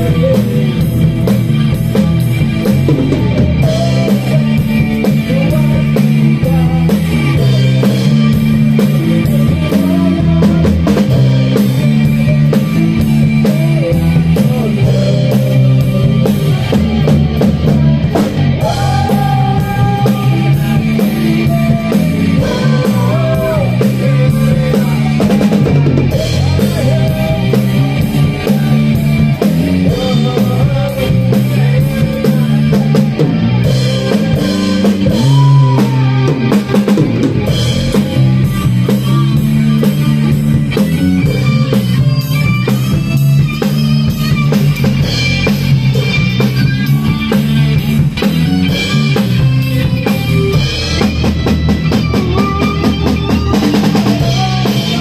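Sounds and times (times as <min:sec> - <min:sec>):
drum kit beat: 0:00.0 - 0:55.0
electric guitar: 0:00.0 - 0:55.0
keyboard: 0:00.0 - 0:55.0.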